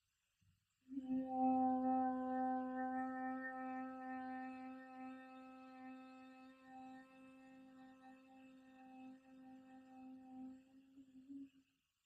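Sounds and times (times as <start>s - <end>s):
woman humming low note: 0.9s - 11.4s.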